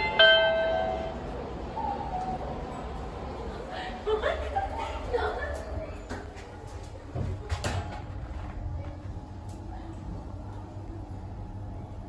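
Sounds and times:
elevator humming: 0:00.0 - 0:12.0.

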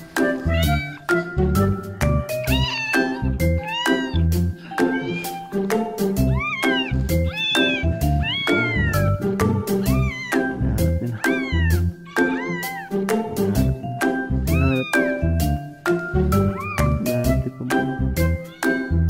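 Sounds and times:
background music with steady beat: 0:00.0 - 0:19.0
cat meowing: 0:00.2 - 0:13.8, 0:14.5 - 0:15.4, 0:16.4 - 0:17.1, 0:18.2 - 0:19.0.

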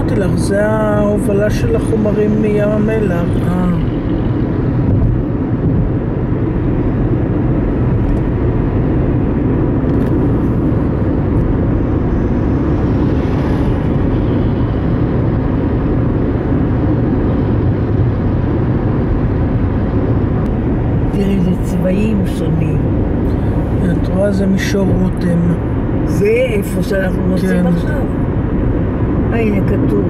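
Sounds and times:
car cabin road and engine rumble: 0:00.0 - 0:30.0.

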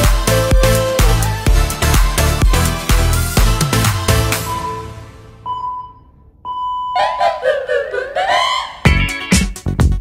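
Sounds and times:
electronic timer beep: 0:04.5 - 0:07.0.

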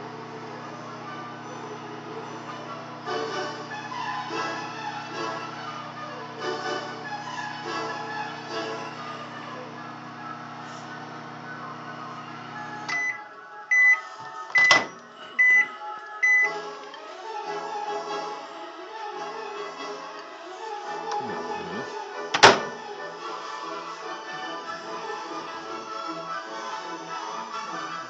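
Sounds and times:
microwave oven humming: 0:00.0 - 0:28.0
microwave beeps: 0:11.1 - 0:16.6
microwave door click: 0:14.6 - 0:15.0, 0:22.4 - 0:22.8.

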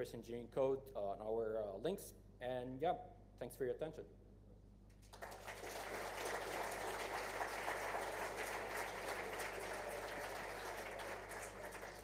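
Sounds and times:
audience applause: 0:05.1 - 0:12.0.

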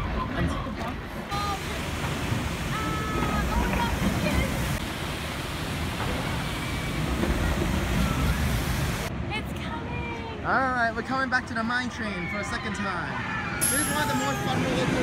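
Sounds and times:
water rushing along flume: 0:00.0 - 0:12.2.

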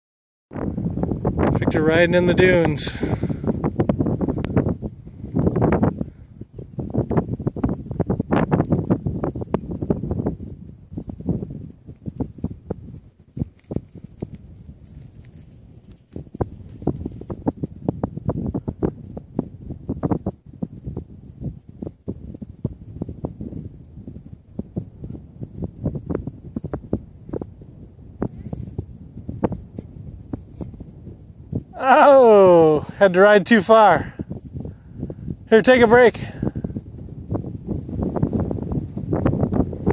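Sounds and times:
wind rumble on microphone: 0:00.5 - 0:39.9
bicycle rattling over gravel: 0:00.6 - 0:20.8.

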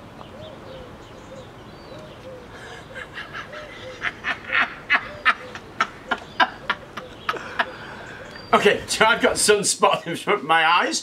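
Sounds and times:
man laughing breathily: 0:02.5 - 0:08.4.

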